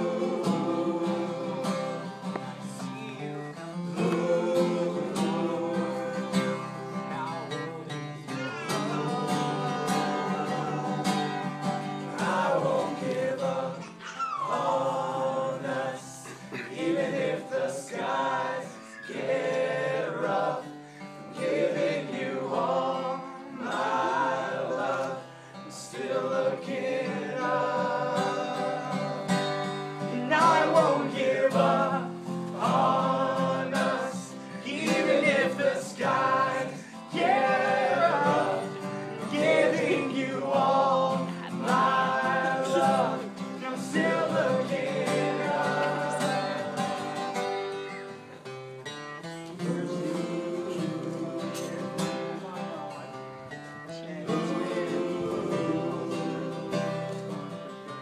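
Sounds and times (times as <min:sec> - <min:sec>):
men singing in harmony: 0:00.0 - 0:47.4, 0:49.5 - 0:52.4, 0:53.9 - 0:57.7
strummed acoustic guitar: 0:00.0 - 0:58.0.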